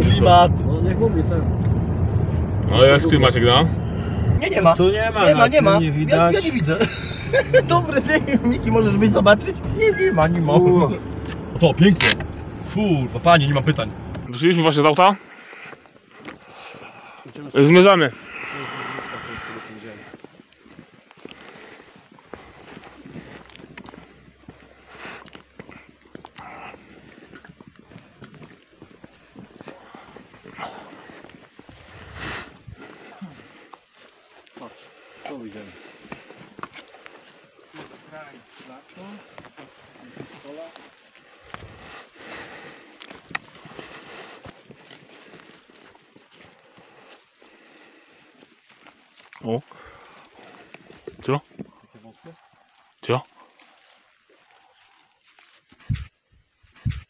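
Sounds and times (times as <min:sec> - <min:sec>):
footsteps crunching through dry leaves: 0:20.0 - 0:56.1.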